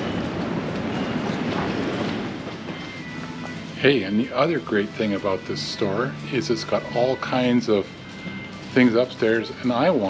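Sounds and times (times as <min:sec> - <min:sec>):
low rumbling background noise: 0:00.0 - 0:10.0.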